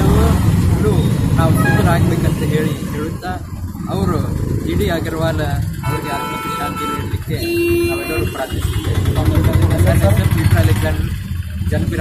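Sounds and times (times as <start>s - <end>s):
engines rumbling: 0.0s - 12.0s
high-pitched car horn: 1.5s - 2.1s, 5.8s - 9.2s
low car horn: 1.5s - 2.1s, 5.8s - 9.2s.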